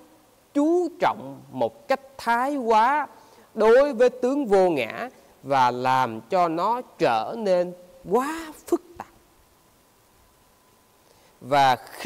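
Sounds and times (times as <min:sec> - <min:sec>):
faint room hiss: 0:00.0 - 0:12.0
man speaking: 0:00.5 - 0:09.2, 0:11.4 - 0:12.0.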